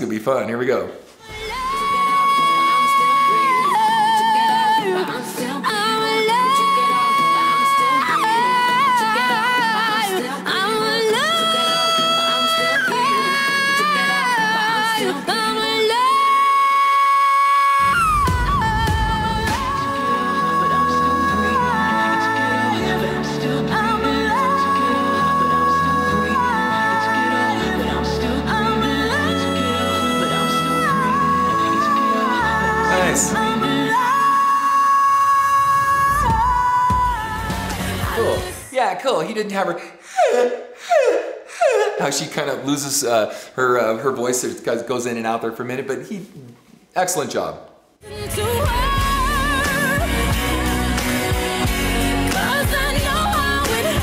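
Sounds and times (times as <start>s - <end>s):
man singing in high voice: 1.3s - 37.0s, 37.8s - 38.9s
bass and drums: 17.8s - 20.0s, 36.1s - 38.6s, 48.2s - 54.0s
band backing: 17.8s - 34.2s, 36.0s - 38.7s, 48.0s - 54.0s.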